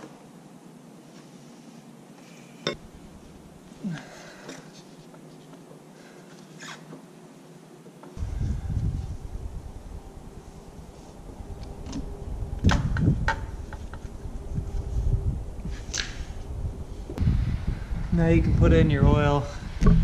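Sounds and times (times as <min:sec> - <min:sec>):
wind rumble on microphone: 0:08.2 - 0:20.0.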